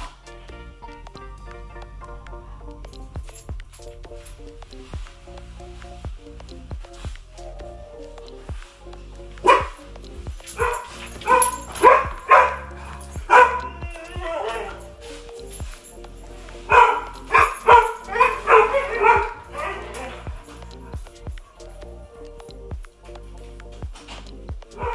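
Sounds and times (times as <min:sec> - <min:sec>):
background music: 0:00.0 - 0:24.9
dog barking: 0:09.4 - 0:15.0, 0:16.7 - 0:21.1.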